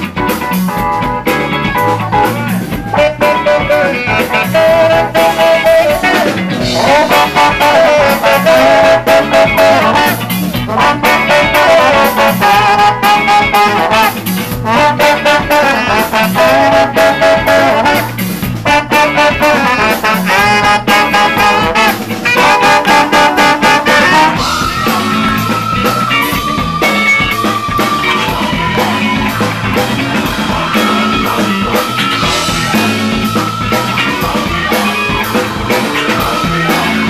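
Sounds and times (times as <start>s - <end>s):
live ska band playing: 0.0s - 37.0s.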